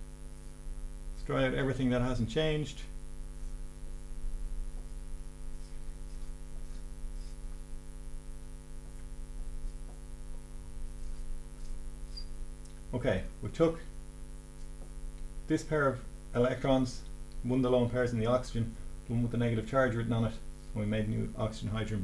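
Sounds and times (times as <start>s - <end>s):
electrical mains hum: 0.0s - 22.0s.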